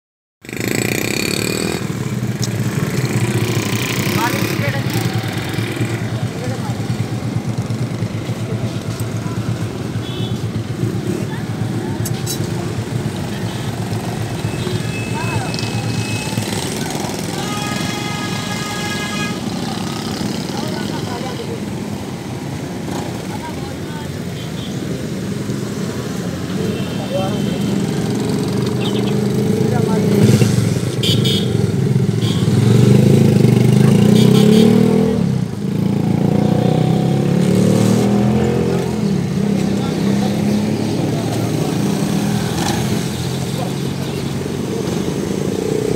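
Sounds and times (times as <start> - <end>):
motorcycle engines passing: 0.4 - 45.9
people's voices: 2.2 - 31.0, 32.5 - 45.9.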